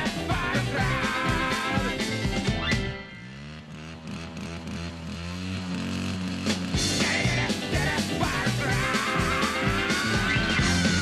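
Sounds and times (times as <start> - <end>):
pop band playing: 0.0 - 3.1, 6.7 - 11.0
motorcycle engine running: 0.0 - 11.0.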